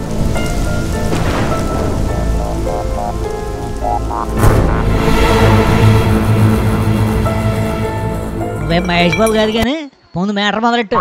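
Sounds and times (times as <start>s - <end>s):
rain hiss: 0.0s - 9.6s
thunder rumble: 0.0s - 9.6s
title music: 0.1s - 9.7s.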